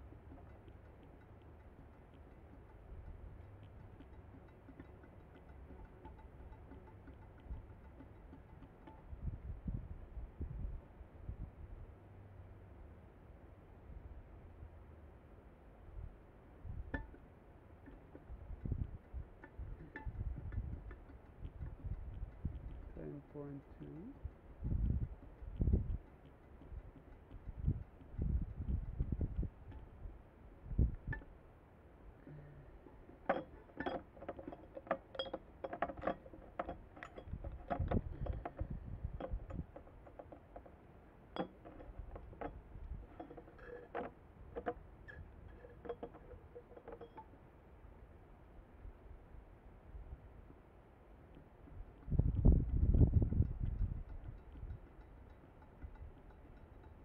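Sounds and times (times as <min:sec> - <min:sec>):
syringe clinking against glass jar: 0:32.5 - 0:40.7, 0:41.4 - 0:47.3
glass ringing: 0:33.3 - 0:37.6
glassware clinking: 0:33.3 - 0:38.5.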